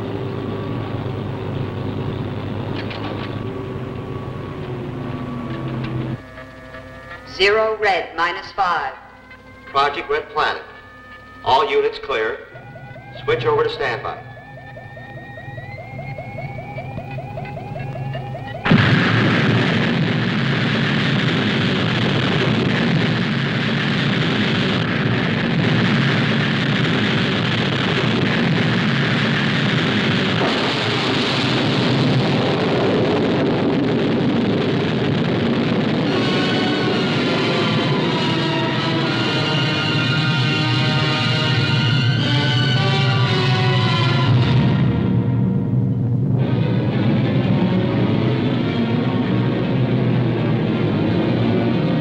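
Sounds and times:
fast pulsing tone: 0:00.0 - 0:32.7
rising electronic whine: 0:00.0 - 0:52.0
rocket engine exhaust rush: 0:00.0 - 0:52.0
music: 0:06.0 - 0:19.1, 0:35.8 - 0:52.0.

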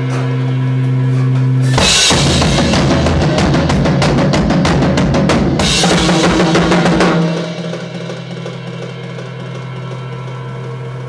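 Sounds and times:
rock drum kit played fast: 0:01.5 - 0:11.0
cymbal crash: 0:01.6 - 0:11.0.

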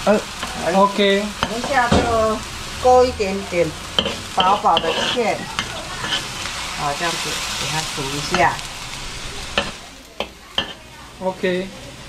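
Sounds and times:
greens sizzling in a wok: 0:00.0 - 0:12.0.

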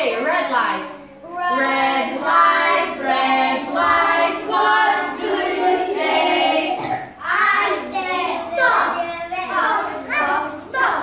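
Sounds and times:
children singing together: 0:01.1 - 0:11.0.

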